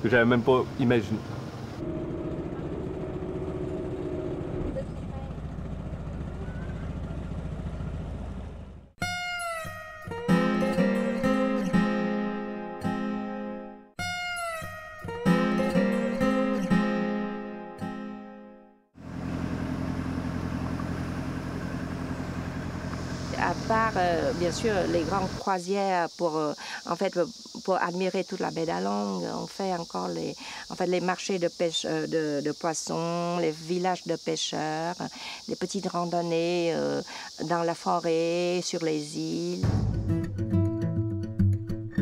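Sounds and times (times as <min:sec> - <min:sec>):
boat engine running: 0:00.0 - 0:08.9, 0:19.0 - 0:25.4.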